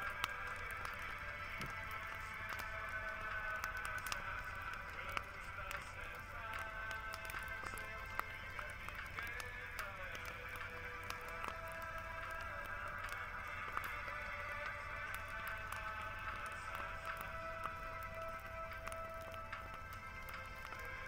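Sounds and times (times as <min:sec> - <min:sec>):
bonfire popping and crackling: 0:00.0 - 0:21.0
music with long held notes: 0:00.0 - 0:21.0.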